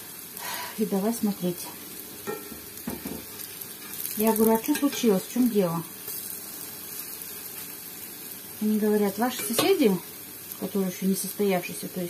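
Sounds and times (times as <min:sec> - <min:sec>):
fritters sizzling in hot oil: 0:00.0 - 0:12.0.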